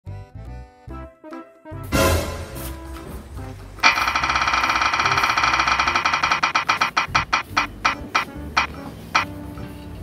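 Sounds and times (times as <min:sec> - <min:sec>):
background music: 0:00.1 - 0:10.0
prize wheel ticking: 0:03.8 - 0:09.3.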